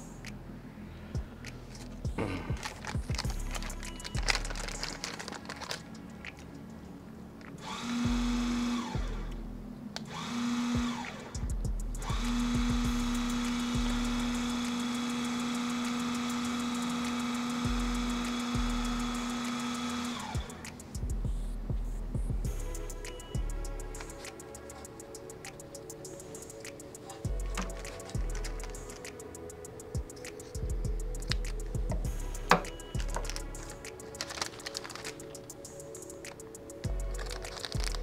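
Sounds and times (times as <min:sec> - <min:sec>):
paper and bag rustling: 0:02.6 - 0:06.5, 0:26.3 - 0:29.1, 0:32.5 - 0:36.3, 0:37.2 - 0:38.0
small electric motor running: 0:07.6 - 0:09.3, 0:10.1 - 0:11.3, 0:12.0 - 0:20.6.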